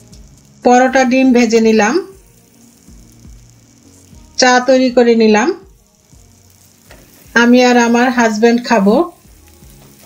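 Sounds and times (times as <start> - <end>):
eggs sizzling in a skillet: 0.0 - 10.0.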